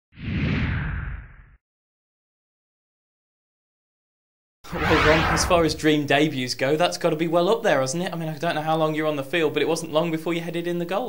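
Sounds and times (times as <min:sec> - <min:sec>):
whoosh of rushing noise: 0:04.7 - 0:06.1.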